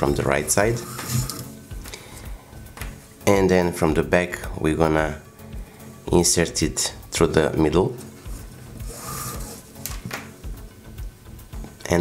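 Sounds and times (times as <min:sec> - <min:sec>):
cord rubbing against cord: 0:00.4 - 0:01.6, 0:08.0 - 0:09.8.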